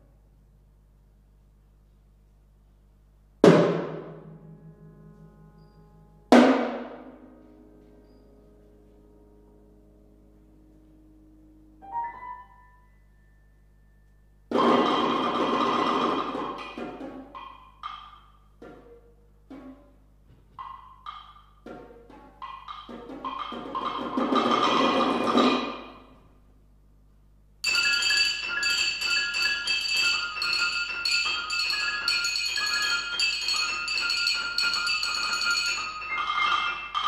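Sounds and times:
sparse struck notes: 0:03.4 - 0:18.5
sustained piano and percussion masses: 0:03.4 - 0:26.2, 0:27.6 - 0:37.0
high ringing bell-like tones: 0:05.4 - 0:06.2, 0:08.0 - 0:08.5, 0:27.6 - 0:37.0.

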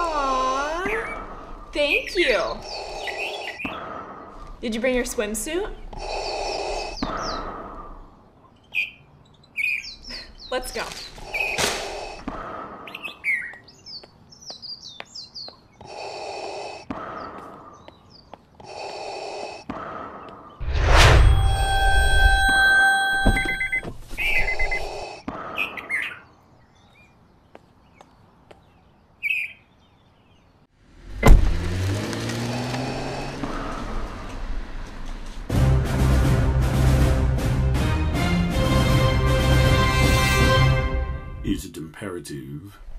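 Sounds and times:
bird chirps: 0:01.8 - 0:03.8, 0:05.8 - 0:12.2, 0:23.2 - 0:30.6
car door slamming: 0:31.2 - 0:31.7.

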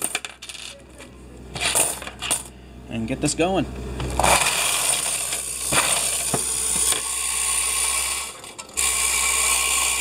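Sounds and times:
clatter of coins shifting: 0:00.0 - 0:02.5, 0:04.2 - 0:10.0
coins clinking and sliding: 0:00.0 - 0:02.5, 0:04.2 - 0:10.0.

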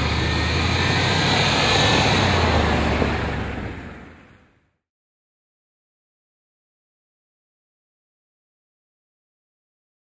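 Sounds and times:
car driving past: 0:00.0 - 0:04.7.

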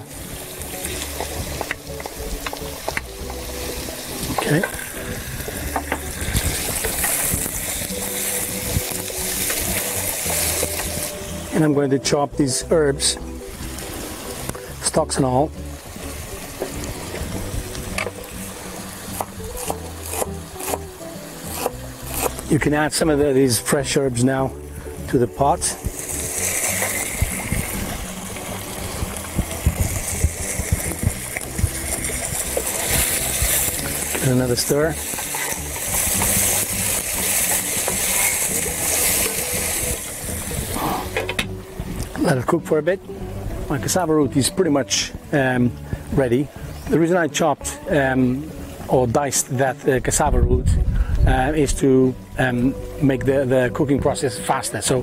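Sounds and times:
vegetables sizzling in a pan: 0:00.0 - 0:11.5, 0:15.6 - 0:22.5, 0:25.7 - 0:41.2
background music: 0:00.0 - 0:55.0
knife chopping on wooden board: 0:19.1 - 0:20.8.

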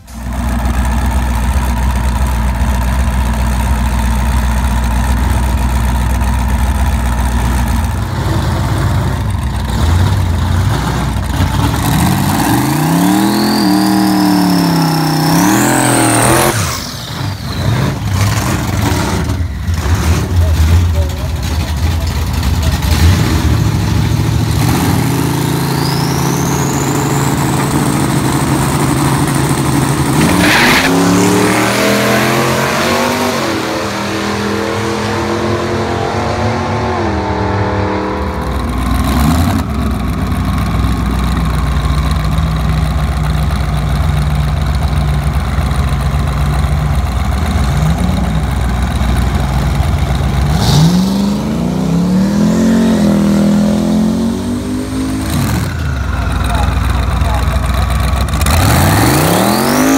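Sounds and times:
car engine revving: 0:00.0 - 0:43.5, 0:44.6 - 0:59.9
car engine accelerating hard: 0:00.0 - 0:59.9.

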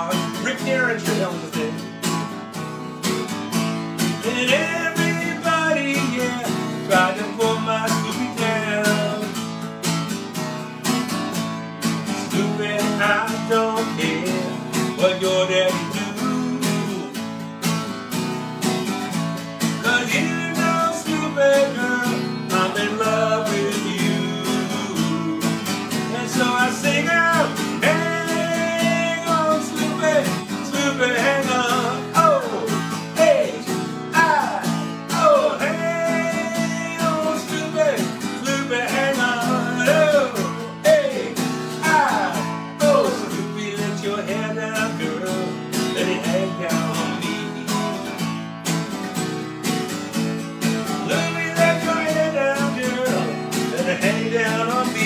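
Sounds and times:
man singing into a microphone: 0:00.0 - 0:01.8, 0:04.2 - 0:09.4, 0:12.2 - 0:17.2, 0:19.8 - 0:48.2, 0:51.0 - 0:55.0
acoustic guitar strumming: 0:00.0 - 0:55.0.

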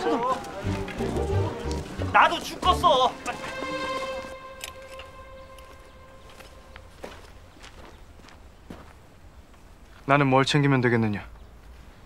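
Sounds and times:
straw mats rustling: 0:00.0 - 0:09.1
footsteps on dirt: 0:00.0 - 0:10.1.

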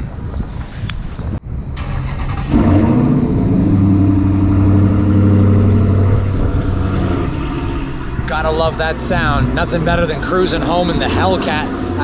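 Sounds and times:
supercharged car engine running: 0:02.2 - 0:12.0.

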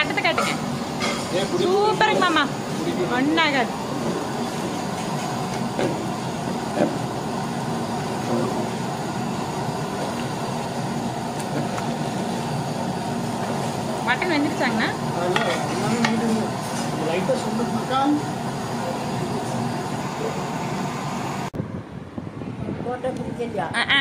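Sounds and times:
voices: 0:00.0 - 0:03.8, 0:14.0 - 0:20.5, 0:22.8 - 0:24.0
low rushing cooking noise: 0:00.0 - 0:21.7.

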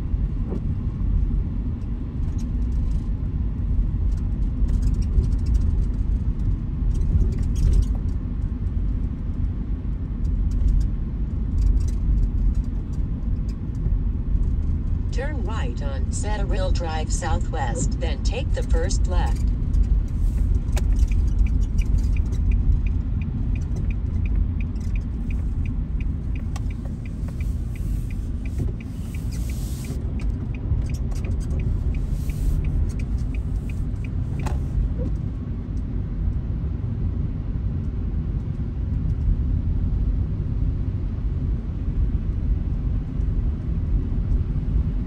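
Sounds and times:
car engine and tyres on snow: 0:00.0 - 0:45.0
turn signal ticking: 0:10.1 - 0:35.9.

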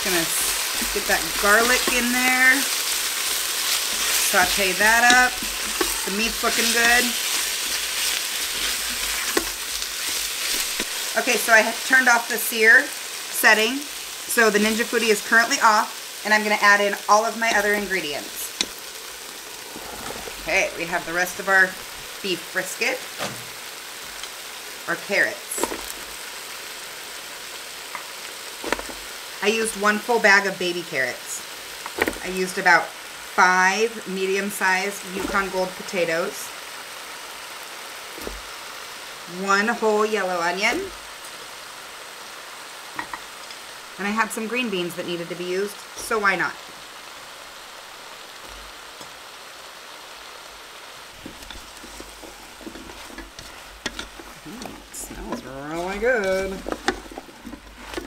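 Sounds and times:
meat and vegetables sizzling: 0:00.0 - 0:58.0
steady hiss: 0:00.0 - 0:58.0
spatula knocking and scraping pot: 0:03.6 - 0:11.0, 0:51.2 - 0:58.0.

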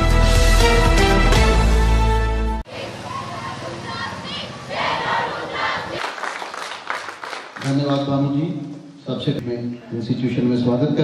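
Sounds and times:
children shouting together: 0:02.7 - 0:06.0.

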